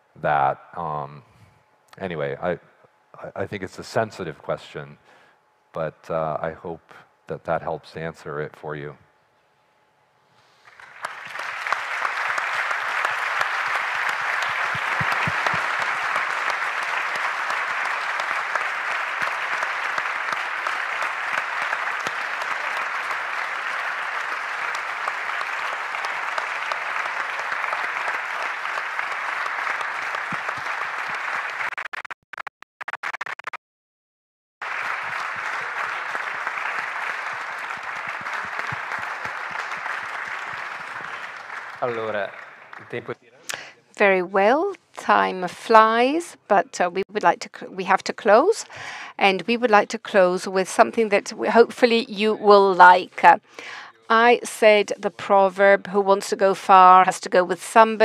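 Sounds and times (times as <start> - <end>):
audience applauding: 10.6 - 32.1, 34.6 - 43.7.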